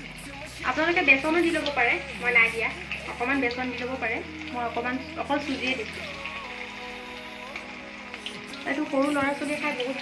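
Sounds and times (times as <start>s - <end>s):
food sizzling in hot oil: 0.0s - 10.0s.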